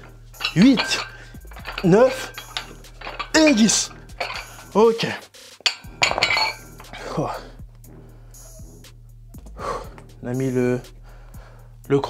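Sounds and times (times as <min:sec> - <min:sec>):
metal dumbbells clinking: 0:00.0 - 0:07.4.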